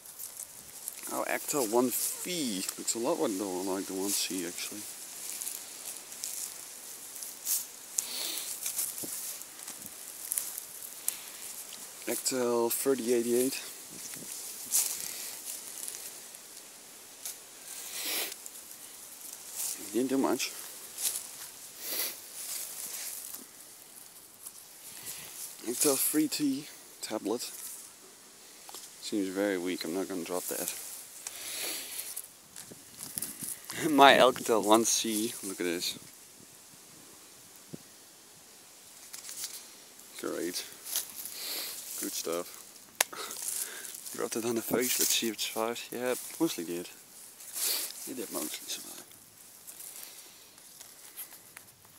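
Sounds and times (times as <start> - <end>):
phone hitting dry leaves: 0.0 - 26.2, 30.4 - 34.8, 40.3 - 45.5
rustle of leaves and grass: 0.0 - 51.9.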